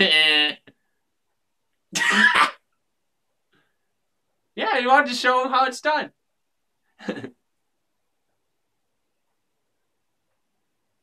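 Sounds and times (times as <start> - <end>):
man laughing stifled: 7.0 - 7.4.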